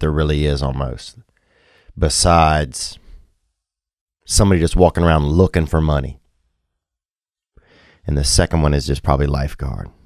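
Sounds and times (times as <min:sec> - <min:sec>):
man speaking: 0:00.0 - 0:01.2, 0:02.0 - 0:03.0, 0:04.3 - 0:06.2, 0:08.1 - 0:10.0
faint breath drawn in: 0:01.3 - 0:02.0, 0:07.6 - 0:08.1.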